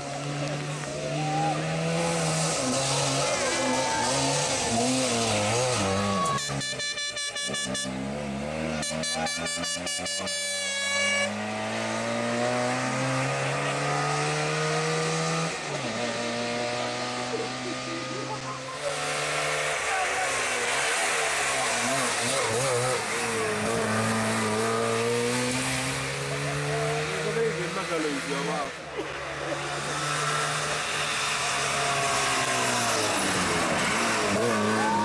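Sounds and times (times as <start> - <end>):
rally car engine revving: 0.0 - 35.0
road and tyre noise: 0.0 - 35.0.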